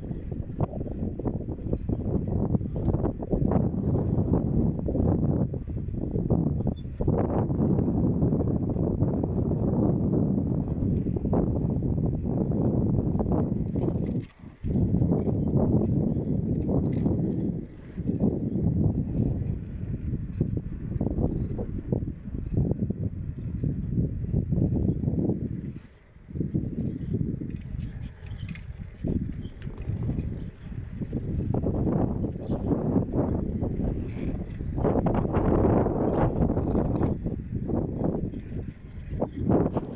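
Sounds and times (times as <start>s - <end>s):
bicycle rattling over road: 0.0s - 39.9s
wind buffeting microphone: 0.0s - 39.9s.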